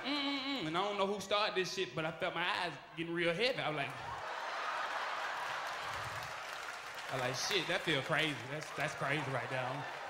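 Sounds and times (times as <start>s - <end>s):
audience applauding: 4.0s - 10.0s.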